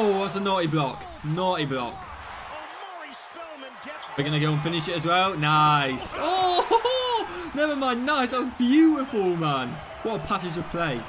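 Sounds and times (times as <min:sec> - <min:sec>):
commentator speaking: 0:00.0 - 0:06.6, 0:07.5 - 0:11.0
arena crowd noise: 0:00.0 - 0:11.0.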